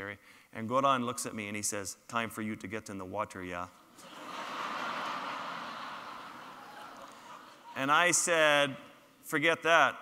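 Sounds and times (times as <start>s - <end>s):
large audience laughing: 4.0s - 8.2s.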